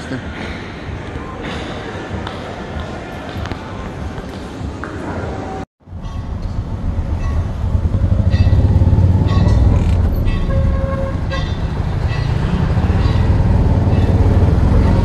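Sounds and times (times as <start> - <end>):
small engine rumbling: 5.8 - 15.0
vehicle horns tooting: 8.1 - 15.0.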